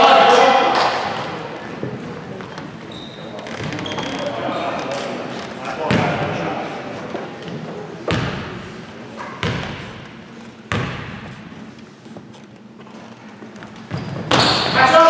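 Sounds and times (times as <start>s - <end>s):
spectators chatting: 0.0s - 10.7s
basketball bouncing on hardwood floor: 9.4s - 10.1s, 10.7s - 11.3s.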